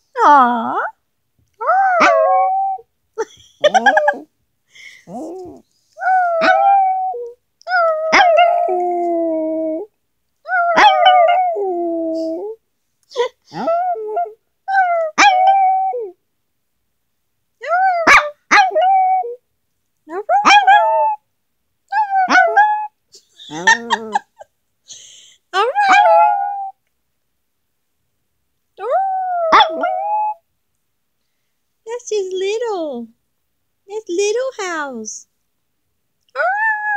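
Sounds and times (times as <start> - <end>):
small dog howling: 1.6 - 2.8, 5.1 - 9.9, 10.5 - 12.6, 13.5 - 16.2, 17.7 - 19.4, 20.3 - 21.2, 21.9 - 24.2, 25.7 - 26.8, 28.8 - 30.4, 36.4 - 36.9.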